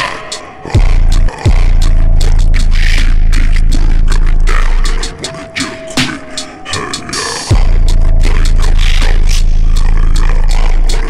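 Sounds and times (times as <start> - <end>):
distorted bass note: 0.8 - 5.1, 7.5 - 11.0.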